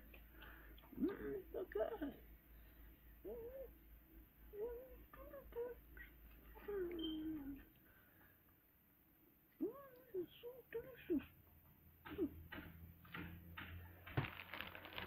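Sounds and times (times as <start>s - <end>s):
person making wordless vocal sounds: 0.8s - 2.2s, 3.2s - 3.8s, 4.5s - 7.7s, 9.6s - 11.4s, 12.0s - 12.4s.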